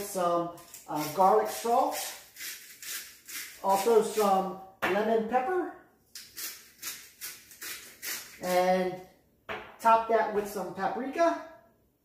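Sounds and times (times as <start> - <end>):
seasoning shaken from container: 0.6 - 4.2, 6.2 - 8.7.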